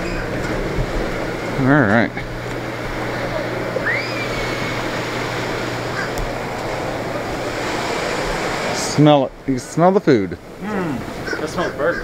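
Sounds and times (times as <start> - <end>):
constant low hum: 0.0 - 12.0
surf: 0.0 - 12.0
wind: 0.0 - 12.0
bird call rising in pitch: 3.8 - 4.8.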